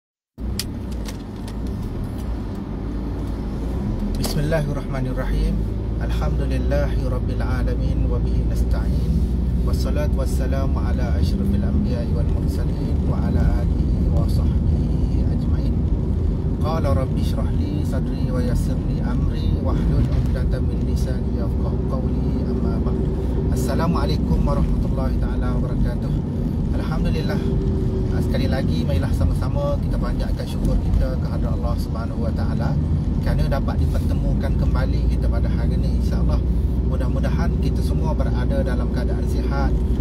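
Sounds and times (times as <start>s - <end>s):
car engine and road noise: 0.3s - 40.0s
man talking: 4.2s - 16.0s, 16.6s - 39.8s.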